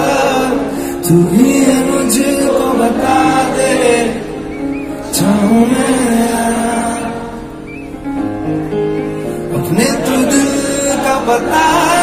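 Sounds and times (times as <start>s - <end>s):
piano accompaniment: 0.0s - 12.0s.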